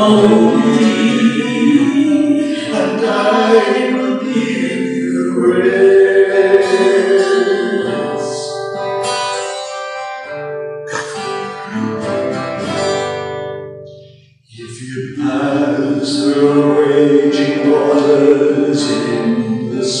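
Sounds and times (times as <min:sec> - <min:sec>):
acoustic guitar: 0:00.0 - 0:20.0.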